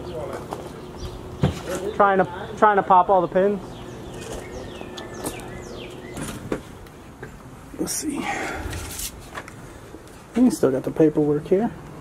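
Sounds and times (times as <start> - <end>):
bird chirping: 0.0 - 6.9.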